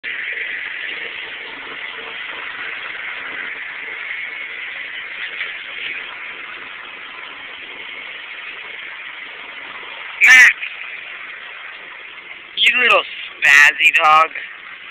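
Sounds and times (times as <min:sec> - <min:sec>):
steady background hiss: 0:00.2 - 0:14.9.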